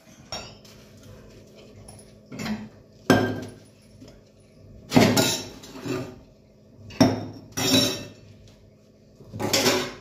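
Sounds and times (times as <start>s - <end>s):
steel dishware clinking: 0.0s - 0.7s, 5.0s - 5.6s, 6.9s - 8.2s, 9.4s - 10.0s.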